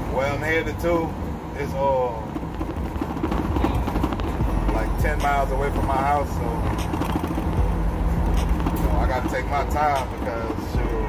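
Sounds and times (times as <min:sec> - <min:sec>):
van engine and tyres rumbling: 0:00.0 - 0:11.0
rattling clatter in cab: 0:01.6 - 0:11.0.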